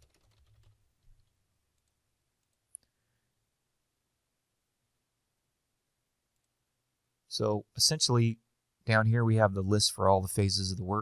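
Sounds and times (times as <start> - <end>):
faint keyboard typing: 0.0 - 3.0.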